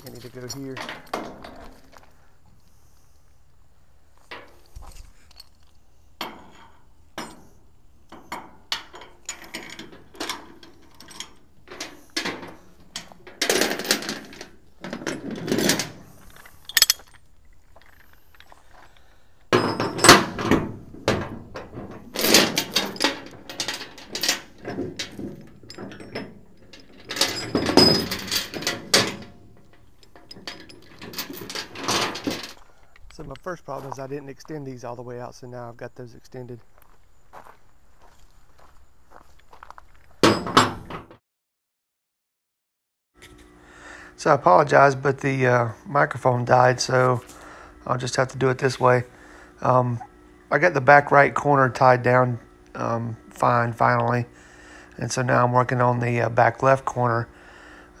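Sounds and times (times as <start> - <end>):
metal clanks: 6.2 - 17.2, 19.5 - 33.5
steel chain rattling: 8.3 - 17.2, 22.1 - 33.4.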